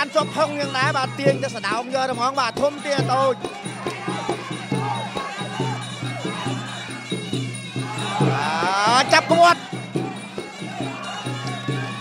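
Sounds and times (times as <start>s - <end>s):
arena crowd noise: 0.0s - 12.0s
steady drumbeat: 0.0s - 12.0s.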